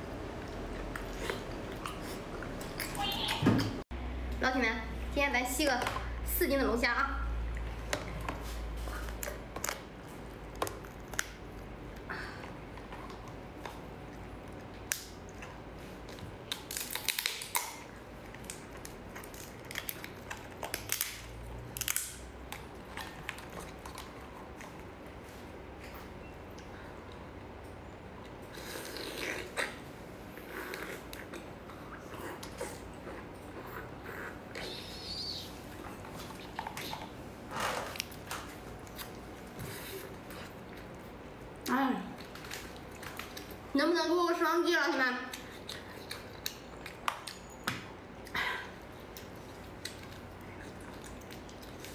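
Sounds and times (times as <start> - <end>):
wet squishing and chewing: 0.2 - 3.8, 7.4 - 43.7, 45.2 - 51.9.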